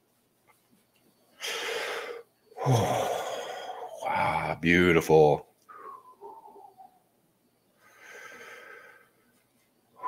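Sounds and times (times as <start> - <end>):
quiet breath: 1.3 - 4.1, 5.7 - 7.0, 7.7 - 10.0.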